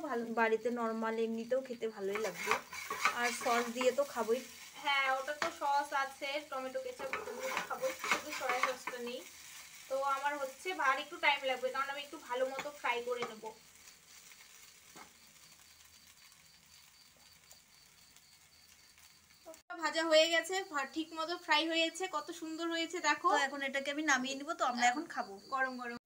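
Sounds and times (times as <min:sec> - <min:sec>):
frying sizzle: 0:00.0 - 0:26.0
spatula scraping frying pan: 0:02.0 - 0:15.6.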